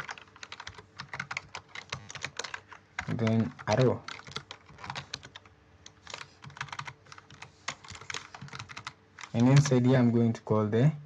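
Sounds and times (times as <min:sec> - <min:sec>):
typing on keyboard: 0:00.0 - 0:09.8.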